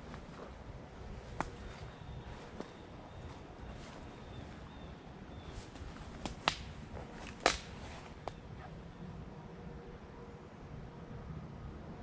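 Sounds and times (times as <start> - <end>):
dry twigs snapping: 5.6 - 8.4.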